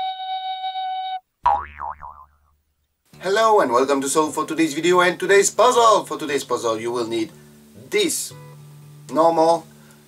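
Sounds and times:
cartoon boing sound effect: 1.5 - 2.6.

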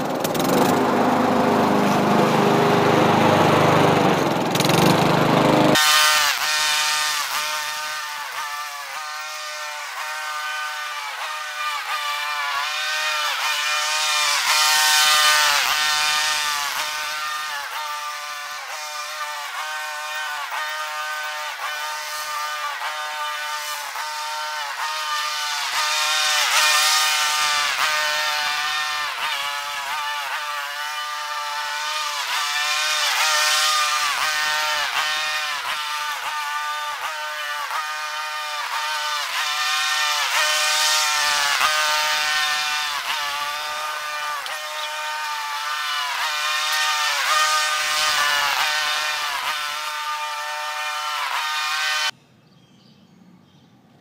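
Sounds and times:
small engine running: 0.0 - 52.2.

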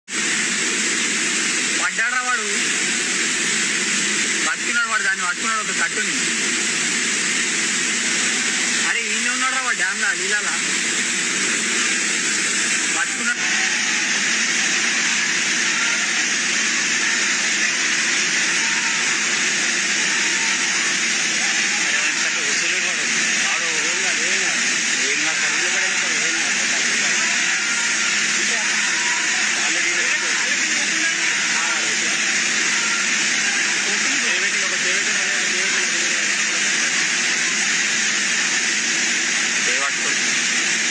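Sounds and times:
water rushing through dam gates: 0.2 - 40.9
faint voices: 11.4 - 40.9.

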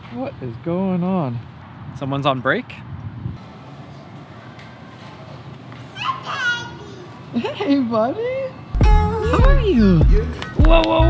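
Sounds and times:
toddler squealing: 5.9 - 7.2.

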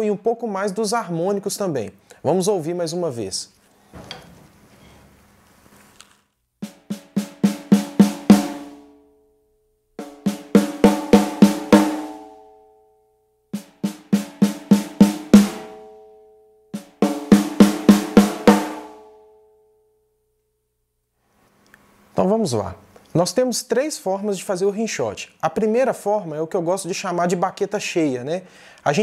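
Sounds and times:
snare drum rimshots: 6.6 - 8.8, 10.0 - 12.1, 13.6 - 15.7, 16.8 - 18.9.

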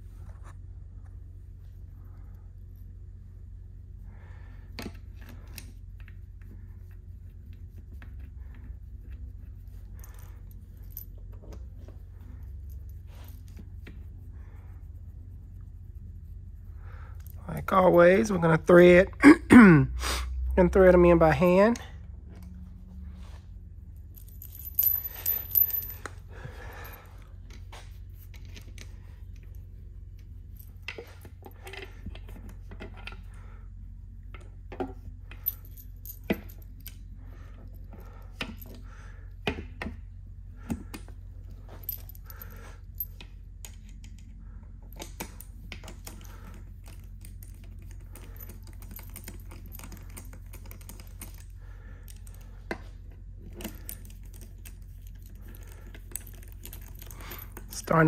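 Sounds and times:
steady low hum: 0.0 - 58.0
metal bolts clinking and rattling: 24.1 - 29.6, 34.4 - 38.8, 40.7 - 44.2, 44.9 - 58.0.

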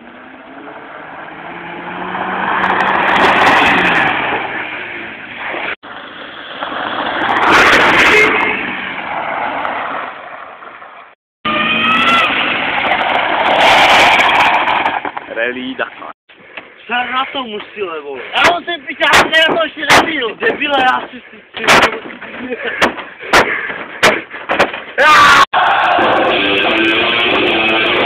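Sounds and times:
rally car engines passing: 0.0 - 10.6
tyres throwing gravel: 12.4 - 15.7.

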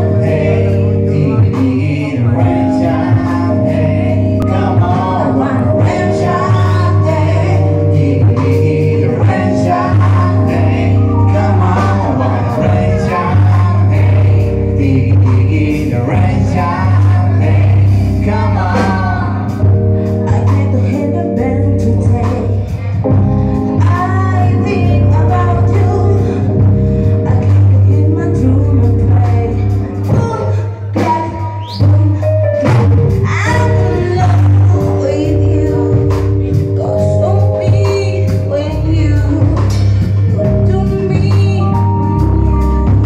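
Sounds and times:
drums: 0.0 - 43.0
electric bass: 0.0 - 43.0
keyboard: 0.0 - 43.0
person singing: 0.0 - 43.0.

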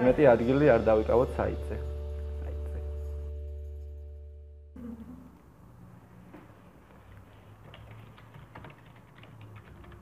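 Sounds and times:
computer keyboard typing: 7.6 - 10.0.

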